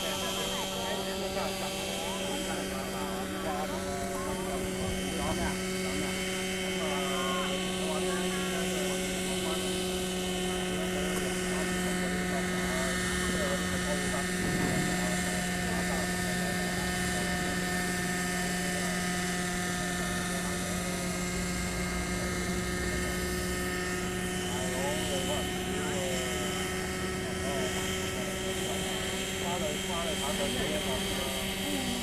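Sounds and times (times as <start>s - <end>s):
model helicopter engine running: 0.0s - 32.0s.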